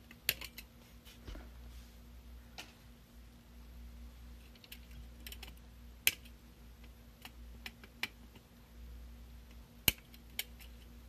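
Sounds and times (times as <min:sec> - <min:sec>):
pliers snipping wire: 0:09.8 - 0:10.7.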